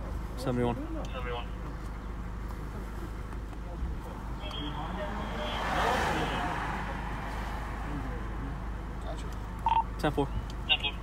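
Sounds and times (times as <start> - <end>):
vehicle passing by: 4.0 - 9.6.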